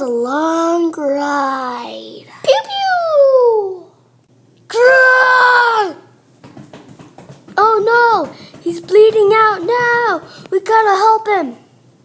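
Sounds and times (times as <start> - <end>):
child screaming: 4.7 - 6.1.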